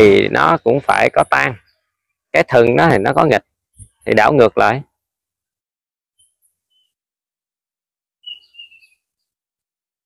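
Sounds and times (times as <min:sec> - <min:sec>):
bird calling: 0:06.2 - 0:07.0, 0:08.2 - 0:09.3.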